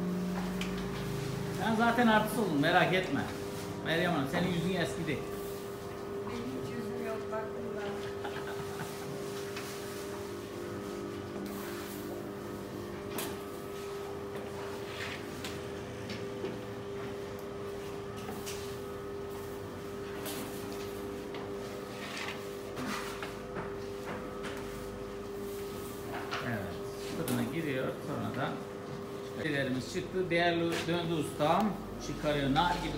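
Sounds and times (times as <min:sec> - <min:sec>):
steady hum: 0:00.0 - 0:32.9.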